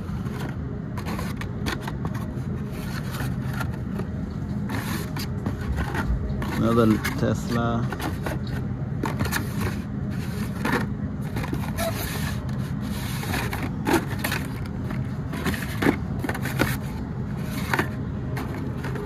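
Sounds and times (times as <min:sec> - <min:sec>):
low background hum: 0:00.0 - 0:19.0
plastic packages clicking and scraping: 0:00.1 - 0:19.0.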